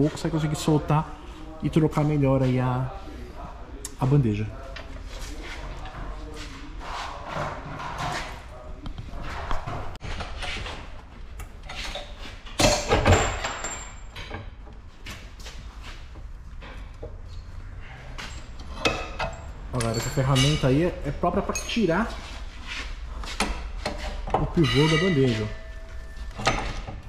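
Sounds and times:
metallic clatter and ring: 18.7s - 20.8s.

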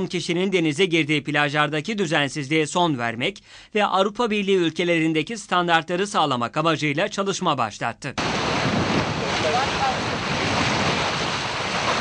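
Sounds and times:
small waves breaking: 8.2s - 12.0s
wind on microphone: 8.2s - 12.0s.

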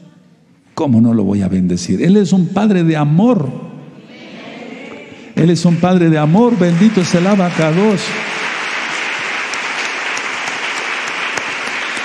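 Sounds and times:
crowd applauding: 5.4s - 12.0s.

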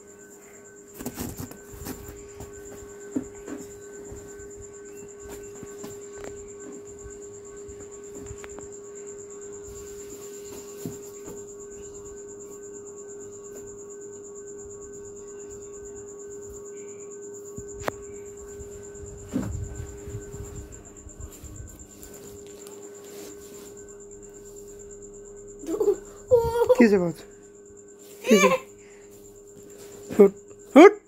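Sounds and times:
high-pitched whine: 0.0s - 31.0s
low steady hum: 0.0s - 31.0s.

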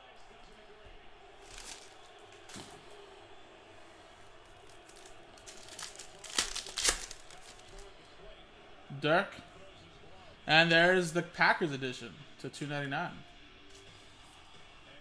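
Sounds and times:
foil wrapper crinkling and tearing: 1.4s - 2.6s, 4.5s - 7.8s.

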